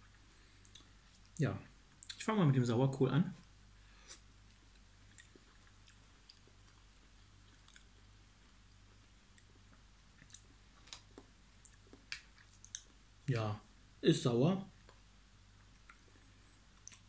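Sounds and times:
mouth sounds of chewing: 0:00.0 - 0:02.3, 0:04.0 - 0:08.2, 0:08.9 - 0:13.0, 0:15.6 - 0:17.0.

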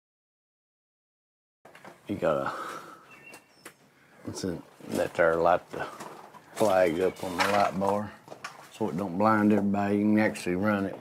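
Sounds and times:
man speaking: 0:02.1 - 0:03.0, 0:04.2 - 0:06.0, 0:06.6 - 0:11.0.

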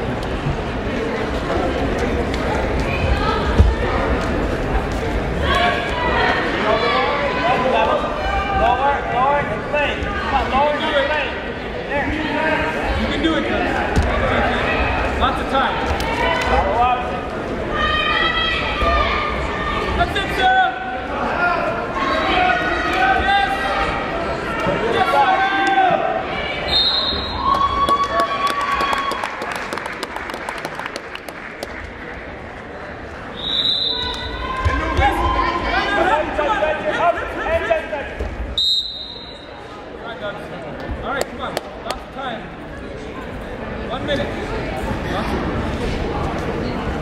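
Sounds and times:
people shouting in a gym: 0:33.8 - 0:39.6.

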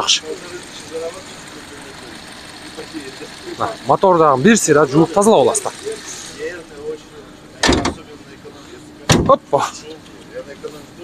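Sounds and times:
car bonnet latching shut: 0:07.6 - 0:08.1, 0:09.0 - 0:09.4.

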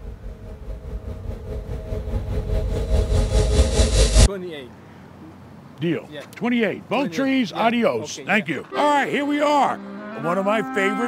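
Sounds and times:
low steady rumble: 0:00.0 - 0:04.3
steady hum: 0:00.0 - 0:04.3.

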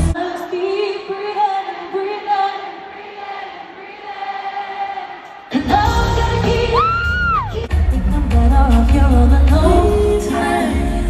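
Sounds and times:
live pop music: 0:00.0 - 0:02.6, 0:05.4 - 0:11.0
woman singing: 0:00.1 - 0:02.9, 0:05.5 - 0:11.0.

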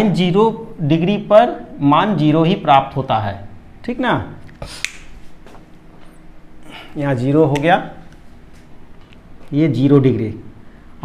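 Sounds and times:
sharp click: 0:04.4 - 0:05.1.

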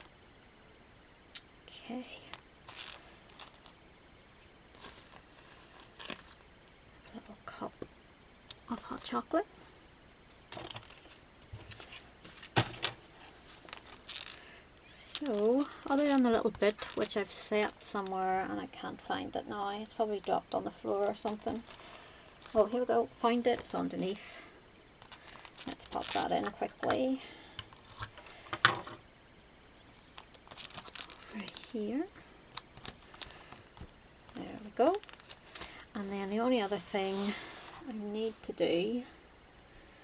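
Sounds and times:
paper and plastic crinkling: 0:13.4 - 0:18.2, 0:25.0 - 0:26.8, 0:30.2 - 0:31.8, 0:34.8 - 0:35.8.

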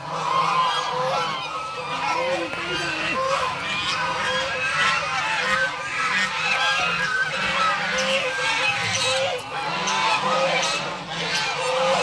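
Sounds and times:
geese honking: 0:00.0 - 0:12.0.

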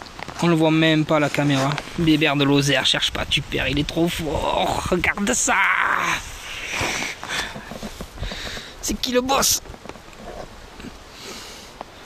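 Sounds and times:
dry grass rustling and crackling: 0:00.0 - 0:12.0.

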